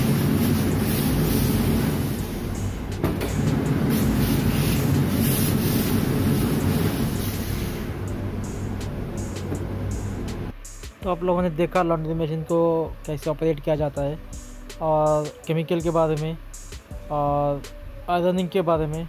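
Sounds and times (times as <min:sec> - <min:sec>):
steam iron hissing: 0:00.0 - 0:08.1
low machinery hum: 0:00.0 - 0:10.6.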